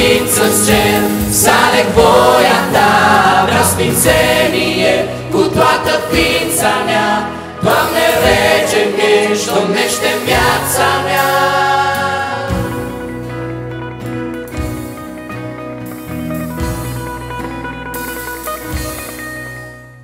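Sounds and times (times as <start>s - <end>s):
group singing: 0.0s - 13.2s
lead singer: 0.0s - 13.5s.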